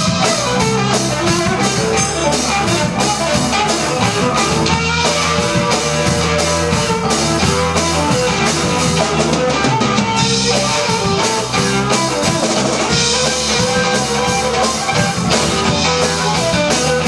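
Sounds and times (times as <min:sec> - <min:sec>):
drum kit with cymbal crashes: 0:00.0 - 0:17.0
electric guitar: 0:00.0 - 0:17.0.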